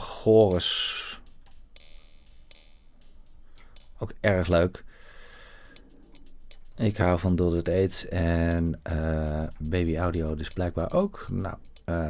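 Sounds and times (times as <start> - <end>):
held cymbal wash: 0.0 - 12.0
hi-hat ticks with delay echoes: 0.0 - 12.0.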